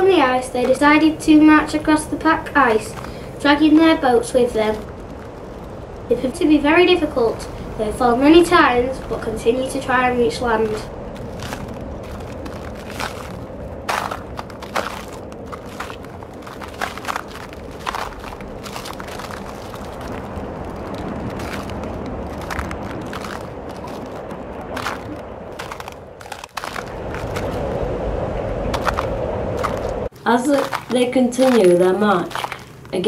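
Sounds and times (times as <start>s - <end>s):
steady rushing noise: 0.0s - 33.0s
ice cracking: 0.1s - 27.9s, 28.7s - 33.0s.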